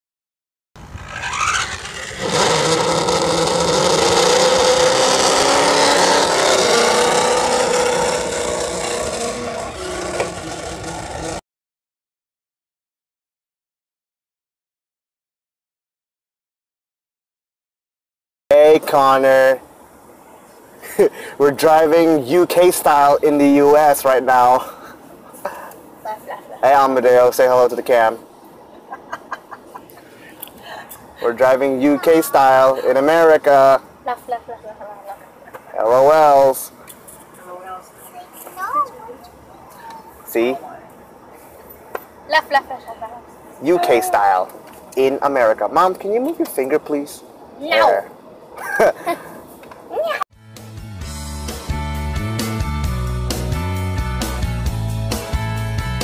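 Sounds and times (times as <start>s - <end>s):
motor vehicle running: 0.8s - 11.4s
rough scraping rattling noise: 0.8s - 11.4s
faint road noise in car cabin: 18.5s - 28.1s, 28.7s - 48.5s.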